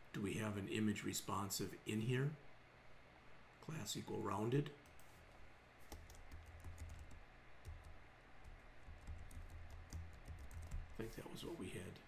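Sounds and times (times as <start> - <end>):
keyboard key clicks: 5.9 - 11.0.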